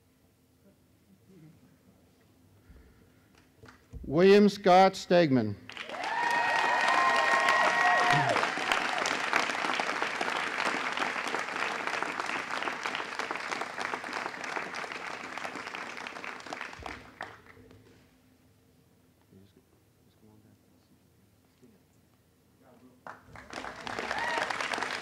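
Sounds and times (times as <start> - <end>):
audience applauding: 5.7 - 17.6, 23.1 - 25.0
high notes from crowd: 5.9 - 11.7.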